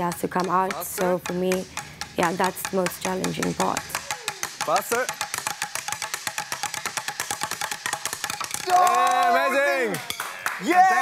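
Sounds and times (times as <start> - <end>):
sticks drumming on wooden stools: 0.0 - 9.4.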